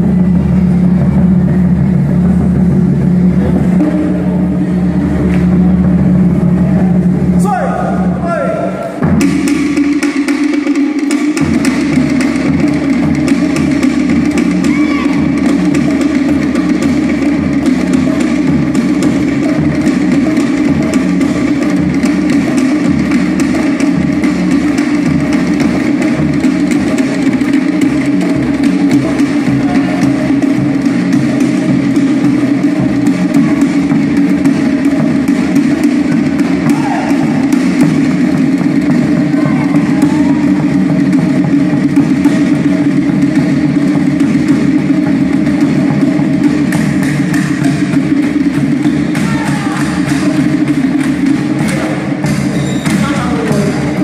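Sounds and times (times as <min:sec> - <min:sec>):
barrel drums struck with sticks: 0:00.0 - 0:54.0
wooden percussion: 0:00.0 - 0:54.0.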